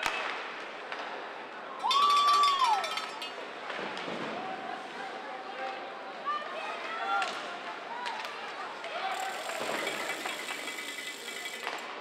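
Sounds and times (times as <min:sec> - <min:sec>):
indistinct crowd voices: 0:00.0 - 0:12.0
hockey sticks and puck clicking: 0:01.9 - 0:03.4, 0:08.0 - 0:12.0.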